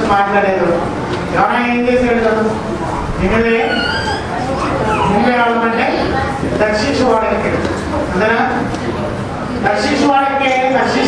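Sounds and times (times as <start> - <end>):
man preaching into microphone: 0.0 - 2.6, 3.2 - 4.1.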